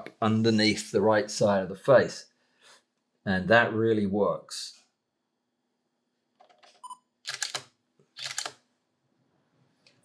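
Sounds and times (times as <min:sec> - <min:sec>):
small clicks: 0:06.4 - 0:08.6.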